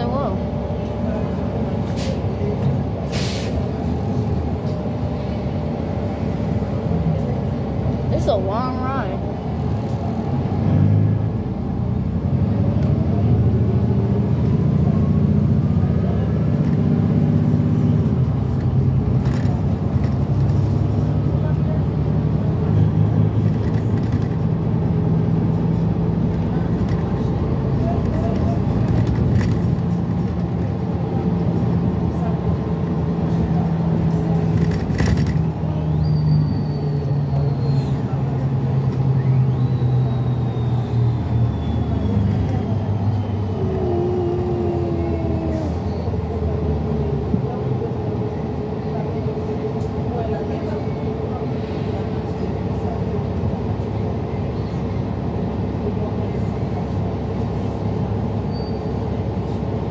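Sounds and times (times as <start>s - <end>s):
bus engine drone: 0.0s - 59.9s
road noise: 0.0s - 59.9s.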